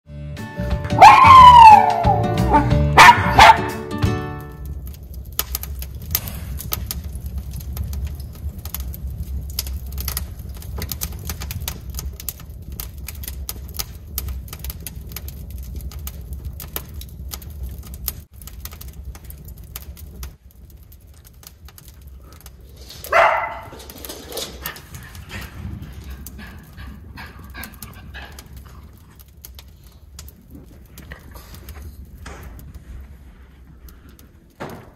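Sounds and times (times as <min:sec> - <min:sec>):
dog barking: 0:01.0 - 0:03.8, 0:23.0 - 0:23.9
intro music: 0:02.0 - 0:04.5
dog claws clicking on wooden stairs: 0:23.0 - 0:28.6.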